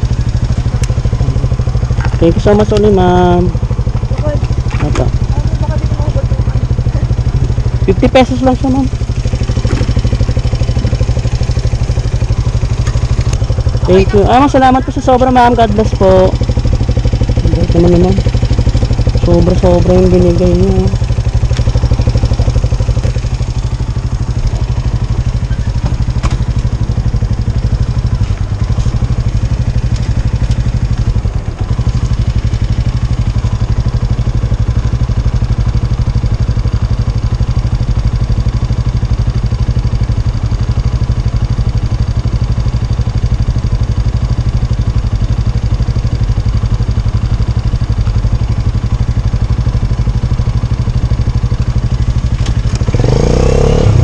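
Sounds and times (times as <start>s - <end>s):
motor scooter engine idling: 0.0s - 54.0s.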